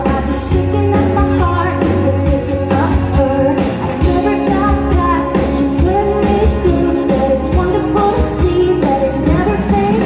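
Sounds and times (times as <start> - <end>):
drum kit beat: 0.0 - 10.0
electric bass: 0.0 - 10.0
keyboard: 0.0 - 10.0
woman singing: 0.0 - 10.0.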